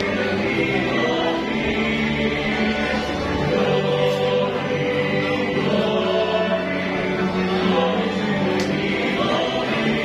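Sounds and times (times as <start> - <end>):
church choir singing a hymn: 0.0 - 10.0.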